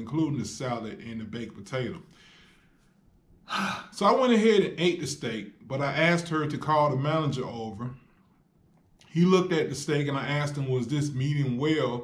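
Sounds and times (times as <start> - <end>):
man speaking: 0.0 - 2.1, 3.5 - 8.0, 9.0 - 12.0
man breathing out softly: 2.1 - 2.8.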